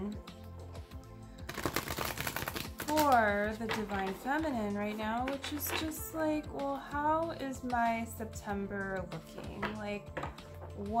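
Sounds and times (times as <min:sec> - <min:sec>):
cards being shuffled by hand: 0:01.5 - 0:04.3, 0:05.2 - 0:06.0.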